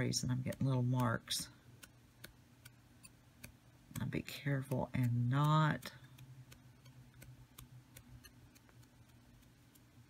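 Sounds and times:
low steady hum: 0.0s - 10.0s
sponge dabbing on stencil: 0.0s - 10.0s.

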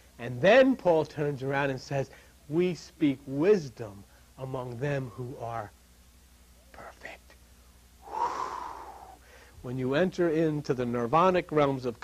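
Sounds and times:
man breathing in: 8.0s - 9.6s.

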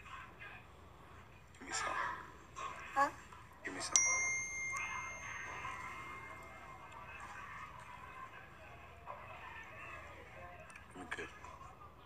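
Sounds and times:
bright ringing ding: 4.0s - 7.0s
faint voices murmuring: 4.8s - 12.0s.

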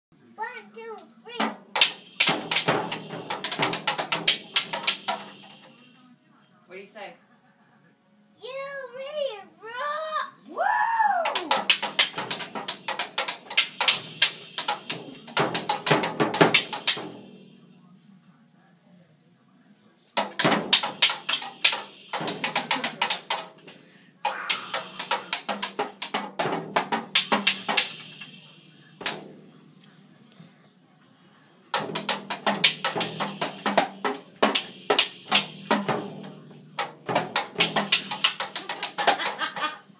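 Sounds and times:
toy drum kit beaten: 0.8s - 5.8s, 11.2s - 17.6s, 20.2s - 29.4s, 31.7s - 39.9s.

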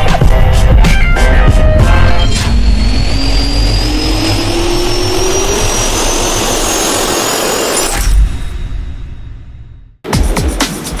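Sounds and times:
jet turbine whine rising: 1.2s - 9.2s.

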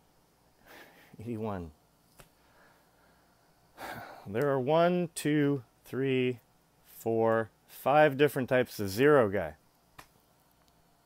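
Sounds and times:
man's sharp intake of breath: 0.6s - 1.2s, 2.4s - 4.3s.

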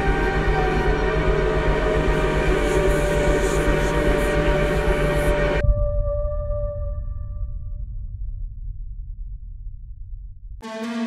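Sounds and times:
heavy distorted metal music: 10.6s - 11.0s.

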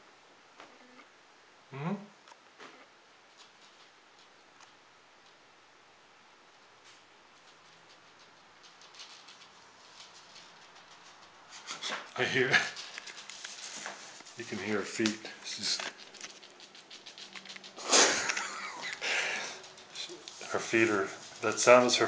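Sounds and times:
claws scratching and clicking: 6.9s - 22.0s.

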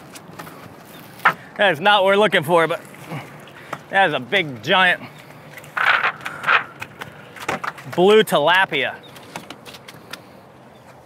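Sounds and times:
wet net watery rush: 1.8s - 10.4s.

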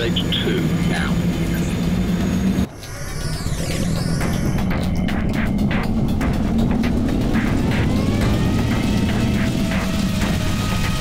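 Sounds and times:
low vehicle drone: 0.0s - 11.0s.

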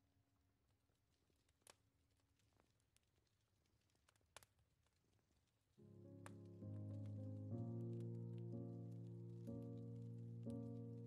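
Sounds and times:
soft slow piano music: 5.8s - 11.0s.

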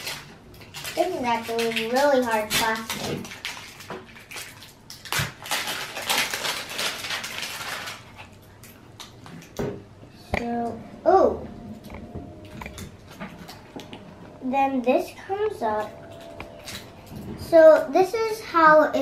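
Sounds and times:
plastic shrink wrap crinkling: 0.0s - 9.6s.

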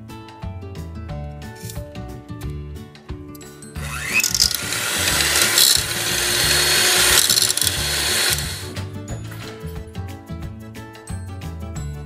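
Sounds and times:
background music: 0.0s - 12.0s
electric hand mixer running: 3.8s - 8.8s.

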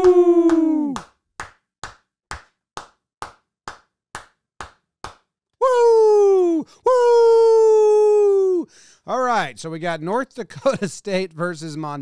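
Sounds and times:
hands clapping: 0.0s - 5.4s.

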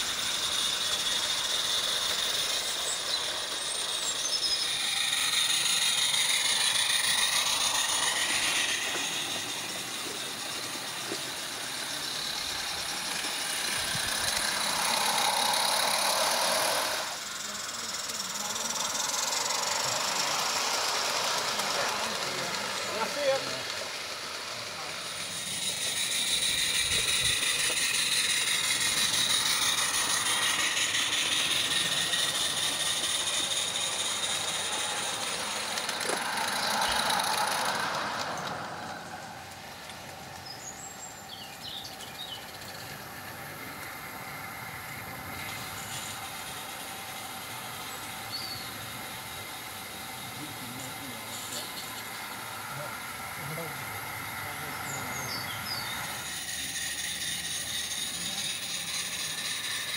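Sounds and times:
steam hissing: 0.0s - 59.9s
wheels rattling on track: 0.0s - 59.9s.

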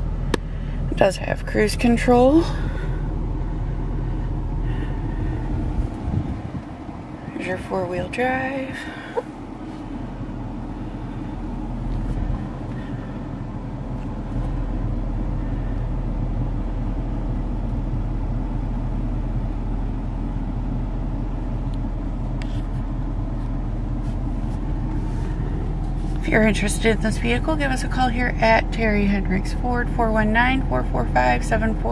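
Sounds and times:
diesel engine idling: 0.0s - 31.9s.

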